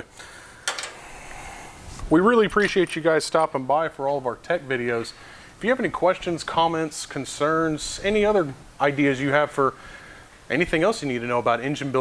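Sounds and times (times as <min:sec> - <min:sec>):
soft rustling hiss: 0:00.0 - 0:12.0.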